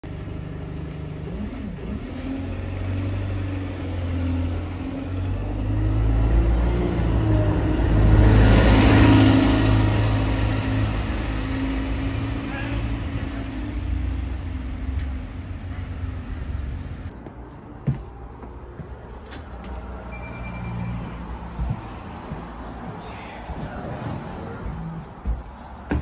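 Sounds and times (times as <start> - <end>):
bus engine hum: 0.0 - 26.0
tyre noise: 21.0 - 26.0.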